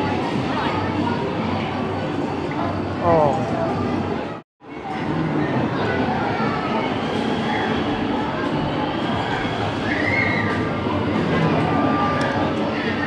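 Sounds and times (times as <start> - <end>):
continuous machine noise: 0.0 - 13.0.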